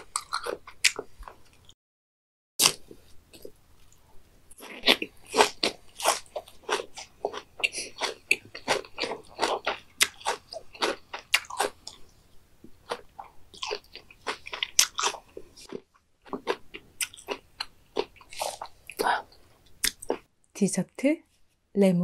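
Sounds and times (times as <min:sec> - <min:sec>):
crunchy chewing: 0:00.0 - 0:01.8, 0:02.6 - 0:20.3.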